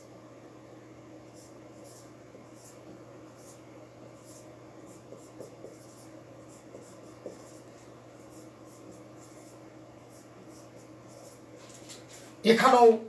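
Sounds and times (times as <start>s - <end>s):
marker scratching on whiteboard: 1.3s - 12.3s
marker tapping on whiteboard: 5.1s - 6.0s, 6.6s - 7.6s.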